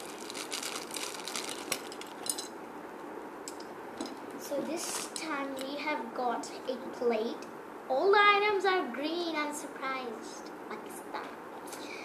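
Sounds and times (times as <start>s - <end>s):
plastic packaging crinkling: 0.0s - 2.5s.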